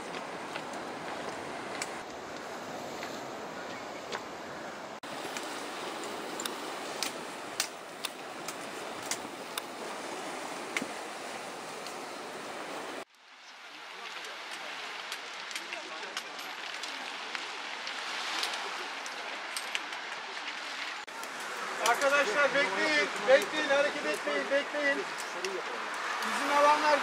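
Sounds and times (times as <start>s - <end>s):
wind: 0.0s - 27.0s
sea wash hiss: 5.0s - 27.0s.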